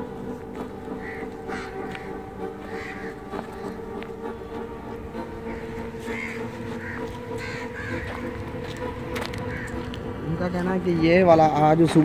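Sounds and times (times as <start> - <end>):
steady low hum: 0.0 - 12.0
crows cawing: 0.9 - 10.5.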